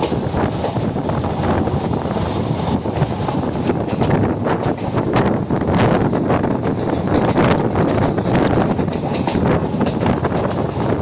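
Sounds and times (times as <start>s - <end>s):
train rumble: 0.0s - 11.0s
wind buffeting microphone: 0.0s - 11.0s.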